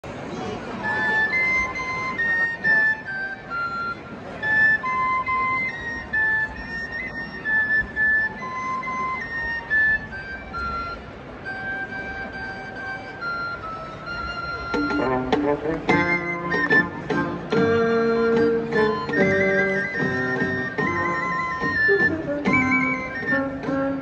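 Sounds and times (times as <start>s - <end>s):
low crowd noise: 0.0s - 24.0s
flute-like wind instrument melody: 0.4s - 24.0s.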